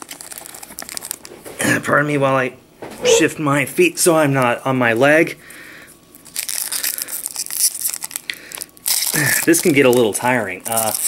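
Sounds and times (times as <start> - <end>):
foil wrapper tearing and crinkling: 0.0 - 1.4, 6.1 - 11.0.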